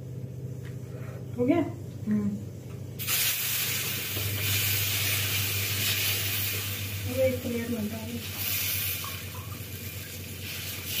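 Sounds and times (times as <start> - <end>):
water running from a tap: 3.0 - 11.0.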